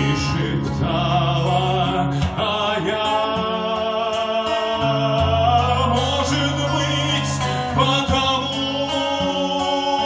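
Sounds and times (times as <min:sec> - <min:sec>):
acoustic guitar: 0:00.0 - 0:10.0
man singing: 0:00.0 - 0:10.0.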